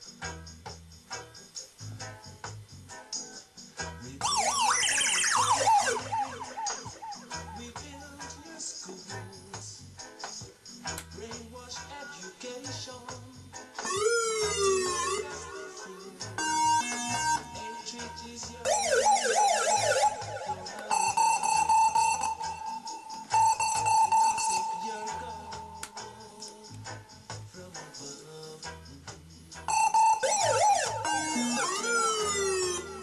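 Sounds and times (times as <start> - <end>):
siren-like electronic warble: 4.2 - 7.7, 13.8 - 17.9, 18.6 - 25.8, 29.7 - 33.0.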